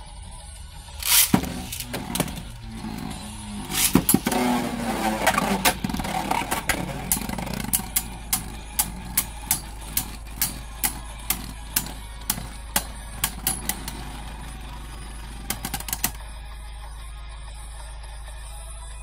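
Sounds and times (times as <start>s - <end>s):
spinning tops clacking together: 1.0s - 16.2s
spinning tops whirring: 1.0s - 16.2s.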